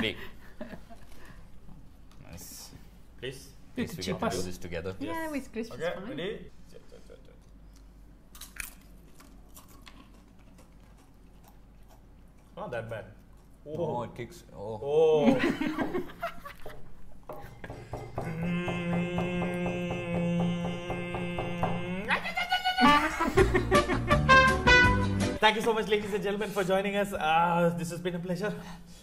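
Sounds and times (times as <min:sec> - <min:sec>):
crunchy chewing of a snack: 0:07.4 - 0:12.6
wavering voice-like cry: 0:18.2 - 0:23.3.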